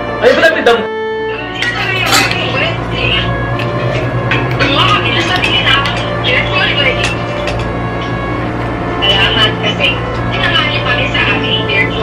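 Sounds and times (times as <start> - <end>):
steady low hum: 1.1 - 12.0.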